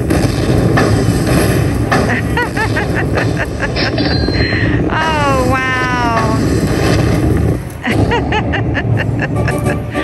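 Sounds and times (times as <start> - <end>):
deep continuous rumble: 0.0 - 10.0.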